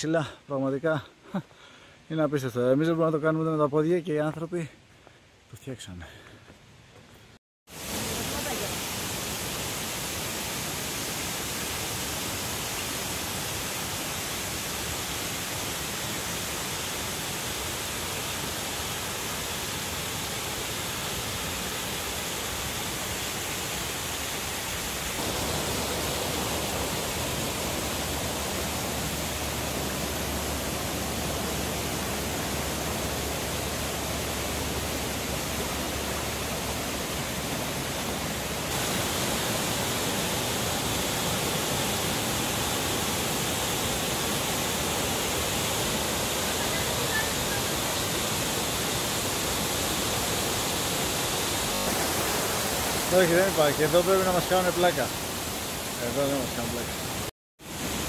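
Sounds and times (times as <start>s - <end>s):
waterfalls rushing into a lake: 7.7s - 58.0s.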